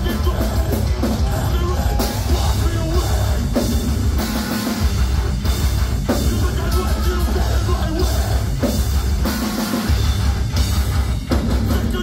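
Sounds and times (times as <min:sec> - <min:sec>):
metal band playing loud: 0:00.0 - 0:12.0.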